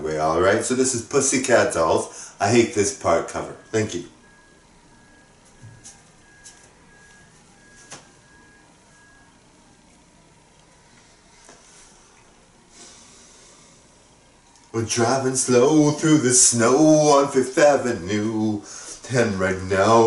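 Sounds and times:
faint room hiss: 0.0 - 20.0.

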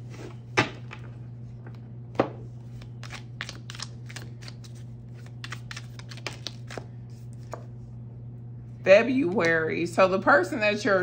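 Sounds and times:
steady low hum: 0.0 - 11.0
cards being shuffled by hand: 2.5 - 7.8.

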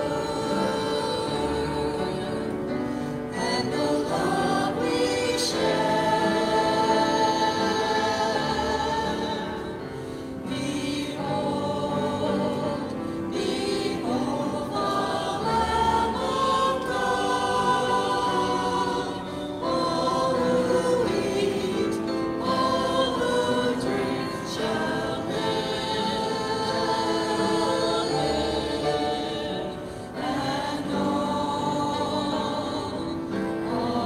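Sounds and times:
choir singing a hymn: 0.0 - 34.0.

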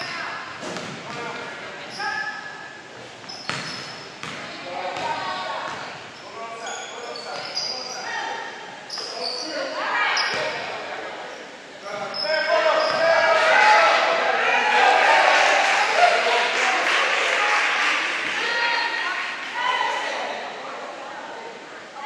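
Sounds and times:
sneakers squeaking: 0.0 - 10.8, 11.8 - 13.3
basketball bouncing on hardwood: 3.5 - 4.4.

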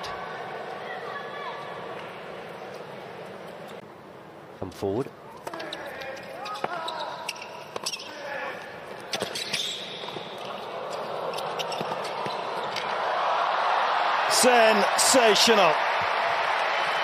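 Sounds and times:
shoe squeaks: 5.6 - 12.8
crowd cheering and applause: 10.6 - 17.0.

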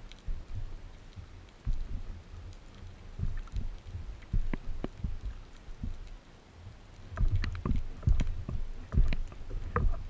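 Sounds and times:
sea water sloshing and slapping: 0.0 - 6.2, 6.8 - 10.0.

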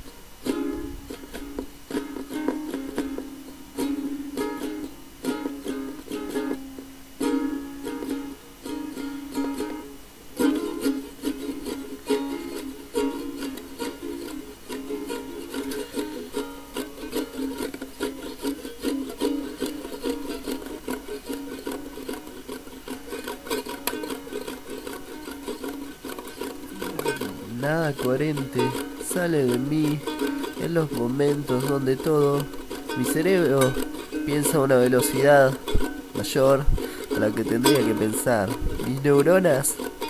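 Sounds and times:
acoustic string instrument strumming: 0.0 - 40.0
recording hiss: 0.0 - 40.0.

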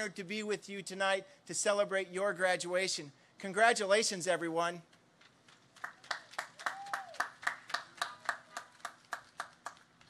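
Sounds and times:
hands clapping: 5.2 - 10.0.

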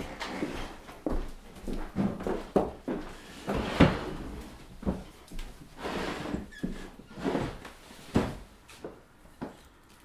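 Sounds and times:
footsteps: 0.0 - 9.7
wooden chair pulled out: 3.2 - 4.4, 5.8 - 8.4.

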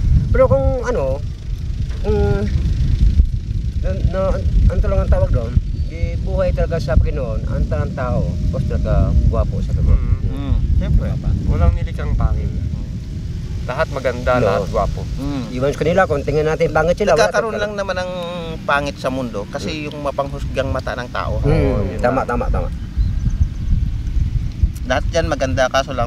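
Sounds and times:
voices talking: 0.0 - 2.9, 3.6 - 23.0
wind rumble on microphone: 0.0 - 26.0.

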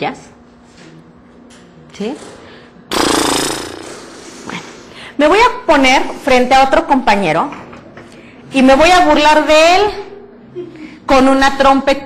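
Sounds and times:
raspberry blown with lips: 2.9 - 4.9.

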